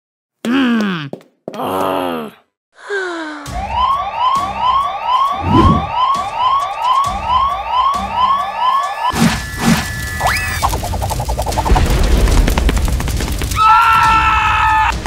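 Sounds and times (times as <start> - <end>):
cartoon vocal groan: 0.5 - 3.2
alarm siren whooping: 3.5 - 11.1.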